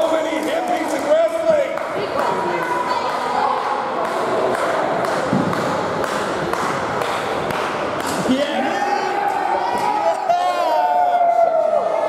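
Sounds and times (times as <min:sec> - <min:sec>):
crowd echoing in gymnasium: 0:00.0 - 0:12.0.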